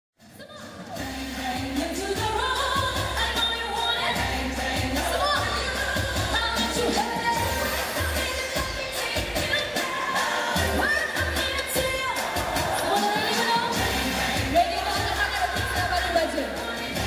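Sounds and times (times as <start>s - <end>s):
woman singing into microphone: 0.4s - 17.0s
backing track with bass beat: 0.6s - 17.0s.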